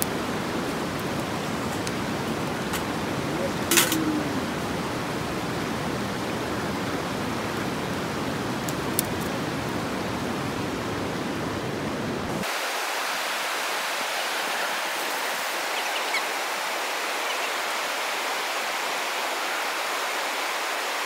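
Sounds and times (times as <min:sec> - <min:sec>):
river rushing: 0:00.0 - 0:21.0.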